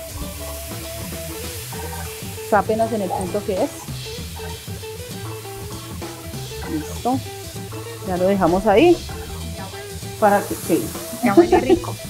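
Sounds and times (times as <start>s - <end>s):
background music with low bass: 0.0s - 12.0s
steak and fries frying in oil: 0.0s - 12.0s.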